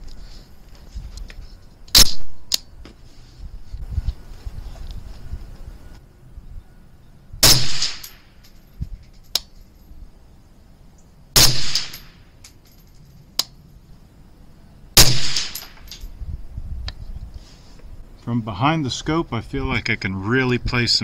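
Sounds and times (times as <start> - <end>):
rifle shots: 1.9 - 2.4, 7.4 - 8.3, 11.4 - 12.3, 15.0 - 16.0.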